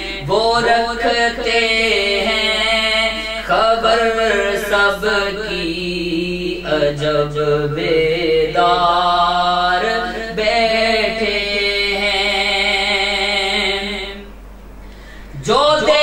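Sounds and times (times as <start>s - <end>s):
man chanting devotional poetry: 0.0s - 8.7s.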